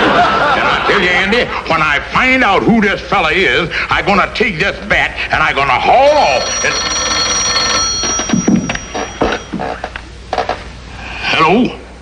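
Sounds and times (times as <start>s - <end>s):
telephone bell ringing: 6.1s - 9.9s.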